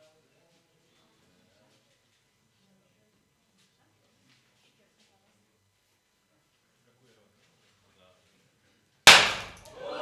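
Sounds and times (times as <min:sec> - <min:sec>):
confetti cannon bang: 0:09.1 - 0:09.6
people cheering: 0:09.6 - 0:10.0.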